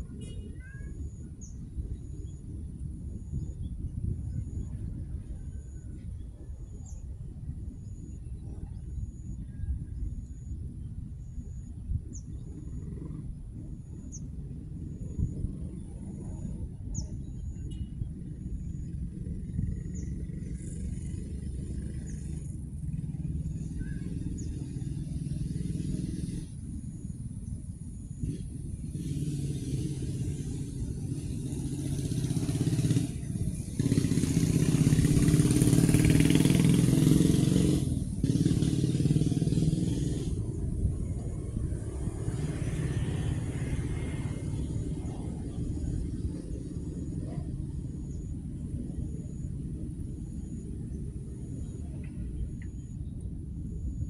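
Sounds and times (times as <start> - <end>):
low outdoor rumble: 0.0 - 54.0
vehicle engine: 0.0 - 54.0.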